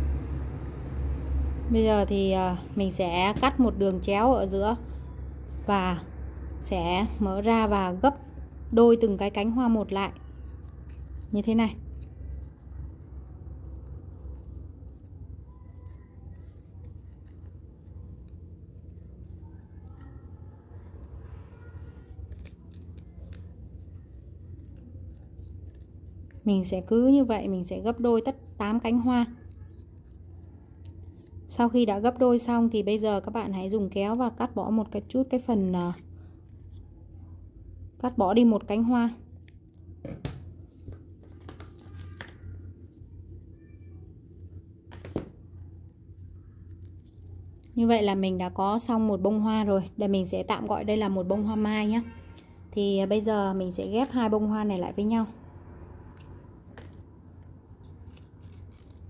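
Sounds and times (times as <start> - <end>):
steady low hum: 0.0 - 59.0
paper being folded and creased: 7.0 - 38.2, 40.6 - 48.2, 55.6 - 59.0.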